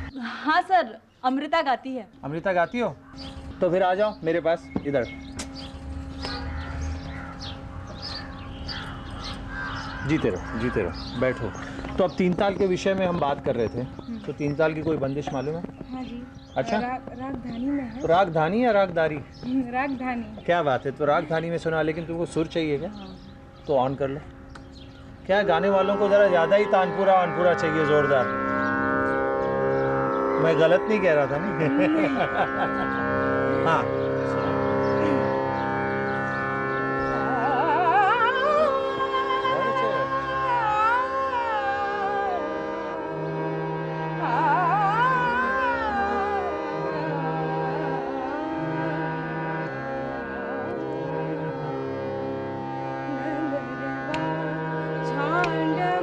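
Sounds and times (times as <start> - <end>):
tanpura and harmonium drone: 0.0 - 56.0
high falling bird chirps: 2.6 - 16.8
crows cawing: 2.7 - 19.4, 24.2 - 37.3.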